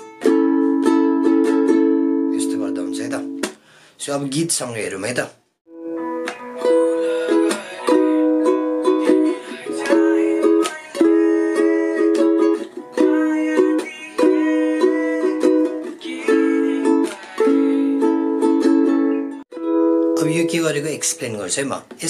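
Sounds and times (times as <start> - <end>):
ukulele strumming: 0.0 - 3.6, 5.7 - 21.2.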